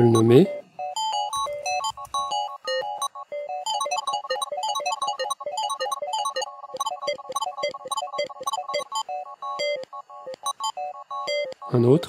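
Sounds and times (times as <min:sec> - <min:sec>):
chopped synthesizer loop: 0:00.0 - 0:12.0.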